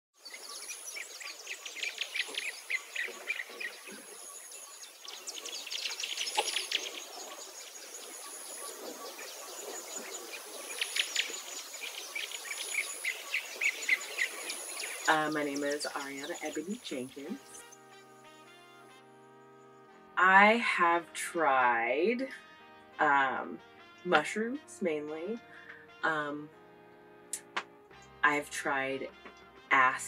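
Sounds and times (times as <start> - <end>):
birds chirping rapidly: 0.2 - 19.9.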